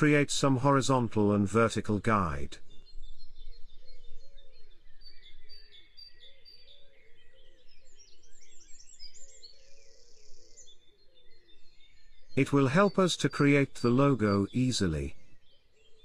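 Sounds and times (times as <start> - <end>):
songbirds singing and chirping: 0.0 - 16.0.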